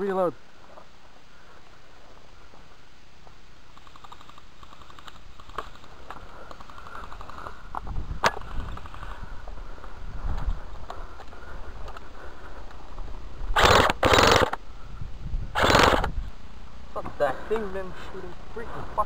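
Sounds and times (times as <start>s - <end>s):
airsoft guns firing bursts: 13.6s - 14.6s, 15.6s - 16.1s.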